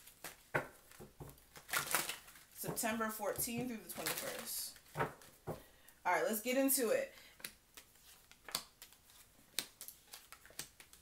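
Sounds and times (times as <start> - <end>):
cards rustling and snapping: 0.0 - 2.8, 7.3 - 11.0.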